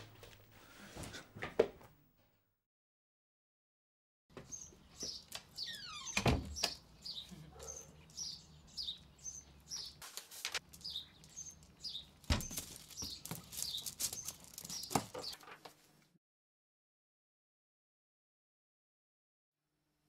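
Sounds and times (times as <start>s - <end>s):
small bird chirping: 4.4s - 10.0s, 10.7s - 15.4s.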